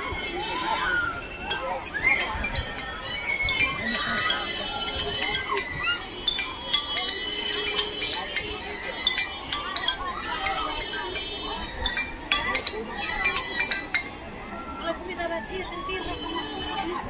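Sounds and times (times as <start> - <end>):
murmur of voices: 0.0 - 17.0
metallic clinking and chiming: 1.4 - 14.8.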